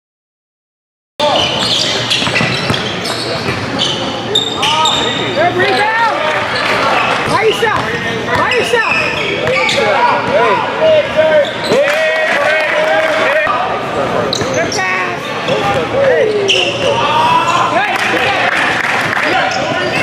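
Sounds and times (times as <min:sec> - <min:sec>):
sneakers squeaking: 0:01.2 - 0:12.0, 0:14.1 - 0:17.8, 0:19.0 - 0:20.0.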